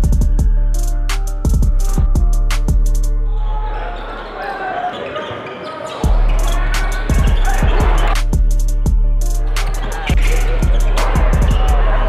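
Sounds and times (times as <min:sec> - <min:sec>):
crowd and player voices: 0:03.1 - 0:12.0.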